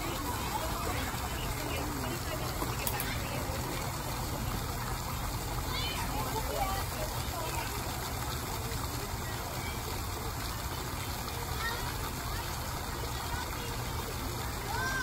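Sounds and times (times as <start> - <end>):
people talking: 0.0 - 15.0
water jet splashing into pool: 0.0 - 15.0.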